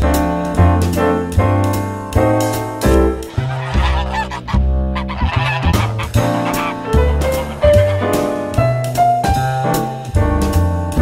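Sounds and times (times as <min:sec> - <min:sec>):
jazz piano and bass: 0:00.0 - 0:11.0
geese honking: 0:03.2 - 0:08.8.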